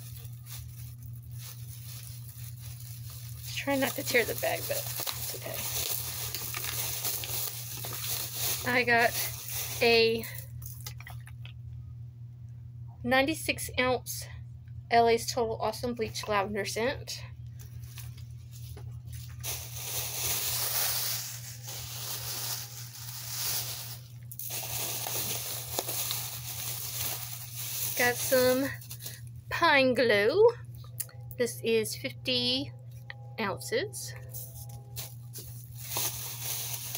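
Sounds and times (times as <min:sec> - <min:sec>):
plastic bag rustling: 0:00.0 - 0:11.3, 0:17.6 - 0:29.3, 0:34.3 - 0:36.9
low hum: 0:00.0 - 0:36.9.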